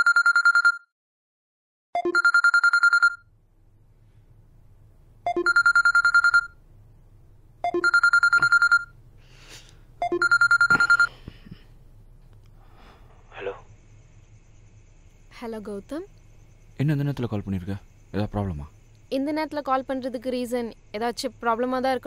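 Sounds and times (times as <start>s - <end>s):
phone ringing: 0.0s - 0.9s, 2.0s - 3.3s, 5.3s - 6.6s, 7.6s - 9.0s, 10.0s - 11.2s
faint low hum: 3.3s - 22.0s.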